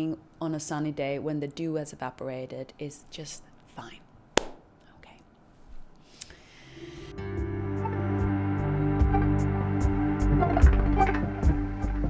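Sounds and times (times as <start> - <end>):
woman speaking: 0.0 - 4.1
faint breathing: 6.0 - 7.1.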